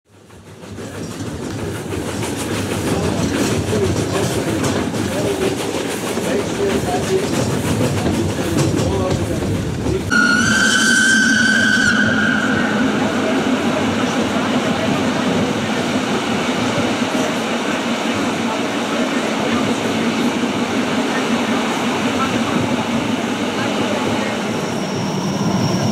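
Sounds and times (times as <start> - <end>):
train running: 0.1 - 25.9
train horn: 10.1 - 13.2.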